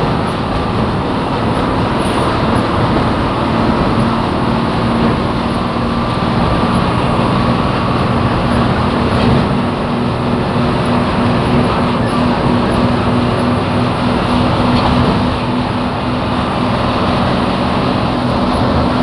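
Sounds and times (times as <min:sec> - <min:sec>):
bus engine and road noise: 0:00.0 - 0:19.0.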